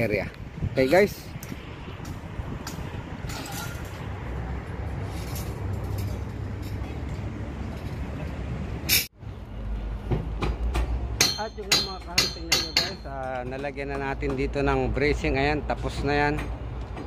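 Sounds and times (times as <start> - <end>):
wind rumble on microphone: 0.0 - 8.7.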